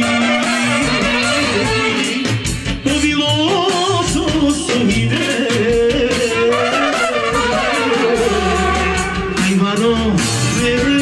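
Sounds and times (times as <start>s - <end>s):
brass band playing dance tune: 0.0s - 11.0s.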